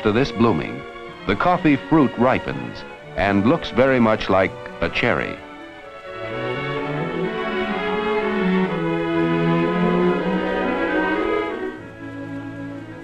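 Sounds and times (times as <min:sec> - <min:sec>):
orchestral music with bowed strings: 0:00.0 - 0:13.0.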